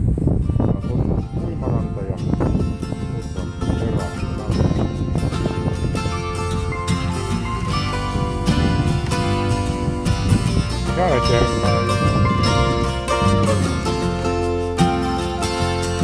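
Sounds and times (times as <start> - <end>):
held notes: 0.4 - 16.0
background music: 0.6 - 16.0.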